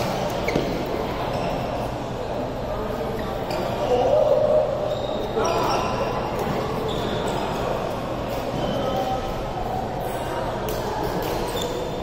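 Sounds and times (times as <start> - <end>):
shoes squeaking on court: 0.3 - 1.8, 4.8 - 7.7, 11.2 - 12.0.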